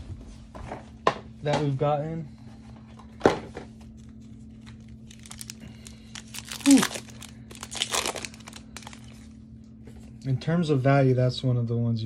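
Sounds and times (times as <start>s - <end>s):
cards rustling by hand: 3.8s - 9.2s.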